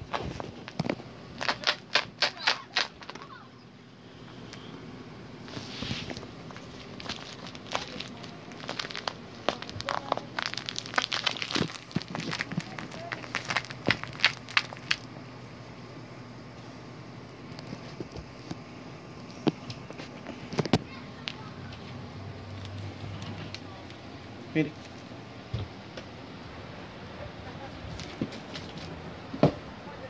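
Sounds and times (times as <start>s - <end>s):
plush toy crinkling and rustling: 0.0s - 3.4s, 5.4s - 15.1s, 17.4s - 21.4s
steady low hum: 0.0s - 30.0s.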